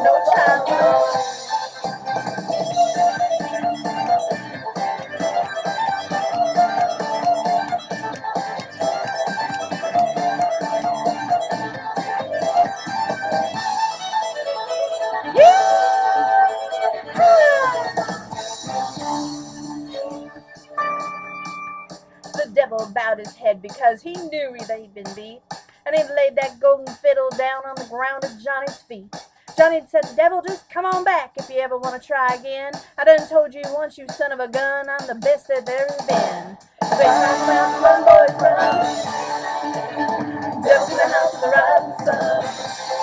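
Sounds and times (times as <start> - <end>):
country backing track: 0.0 - 23.1, 35.8 - 43.0
fast fiddle run: 2.5 - 15.6.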